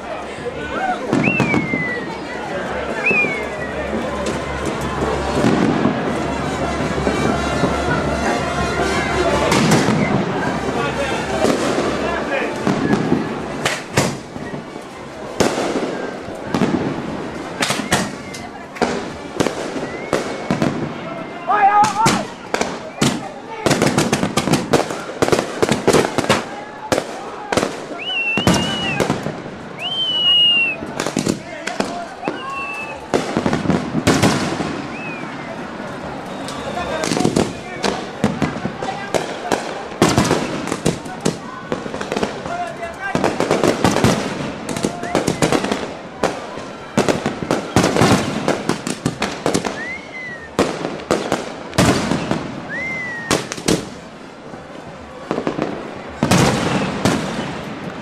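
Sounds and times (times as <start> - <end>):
fireworks bangs and crackles: 0.0 - 58.0
onlookers' voices: 0.0 - 58.0
firework whistles: 1.1 - 2.3, 2.9 - 4.0, 7.0 - 10.5, 17.5 - 20.9, 27.7 - 31.4, 32.2 - 38.2, 43.2 - 45.9, 47.0 - 54.0, 56.2 - 57.7.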